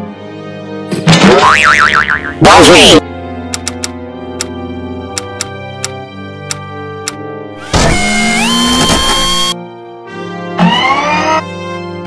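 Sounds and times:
background music: 0.0s - 12.0s
cartoon boing sound effect: 1.1s - 2.6s.

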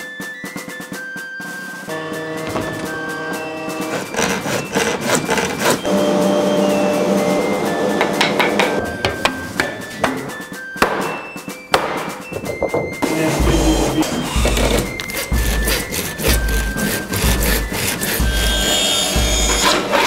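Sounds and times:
background music with held notes: 0.0s - 20.0s.

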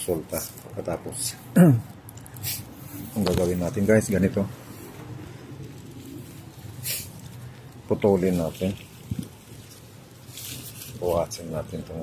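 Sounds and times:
leaves and twigs rustling: 2.0s - 12.0s.

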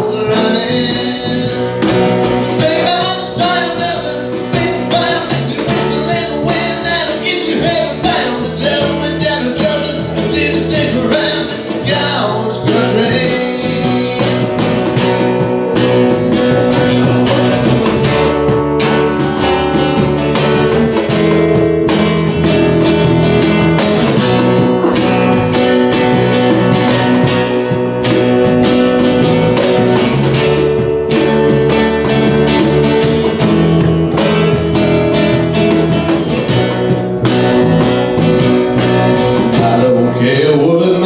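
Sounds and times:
person singing: 0.0s - 14.9s, 24.1s - 25.5s, 39.4s - 41.0s
acoustic guitar strumming: 0.0s - 41.0s
bass guitar line: 0.0s - 41.0s.

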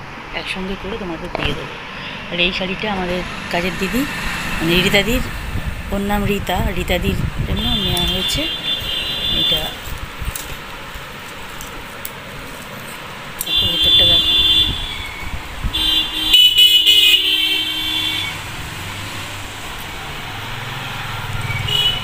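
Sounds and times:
low rumble: 1.2s - 8.7s
horn-like steady tone: 2.2s - 6.0s, 7.5s - 9.9s, 13.4s - 18.4s.

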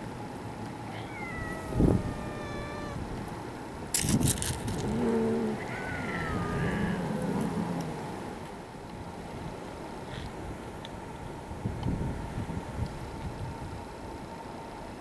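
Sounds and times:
cats meowing: 0.8s - 3.1s, 4.8s - 7.9s.

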